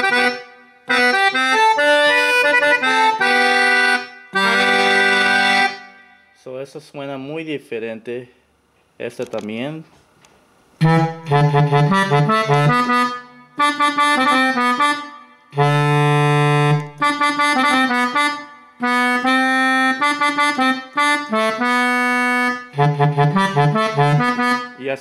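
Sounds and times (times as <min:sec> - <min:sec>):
accordion playing quick phrases: 0:00.0 - 0:06.2, 0:10.8 - 0:25.0.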